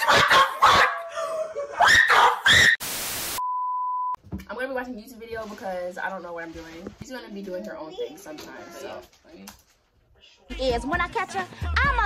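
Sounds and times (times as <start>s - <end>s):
loud yelps: 0.0s - 2.8s
tv static: 2.8s - 3.4s
steady test tone beep: 3.4s - 4.2s.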